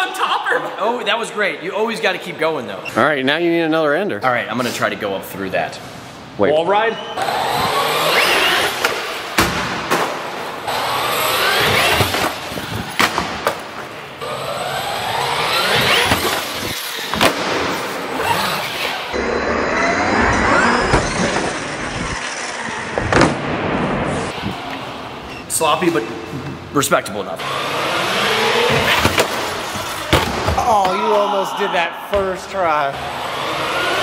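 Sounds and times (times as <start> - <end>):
toy truck electric motor whine: 7.2 - 8.8, 10.6 - 12.1, 14.2 - 17.1, 27.5 - 28.9.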